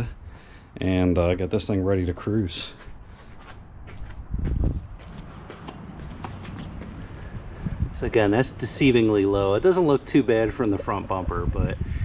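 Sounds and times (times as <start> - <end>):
footsteps: 2.2 - 7.6.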